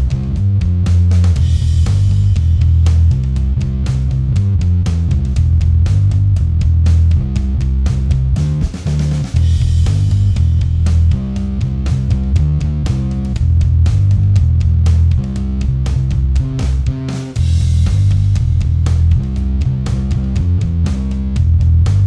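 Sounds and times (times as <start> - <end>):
fuzzed bass riff: 0.0 - 22.0.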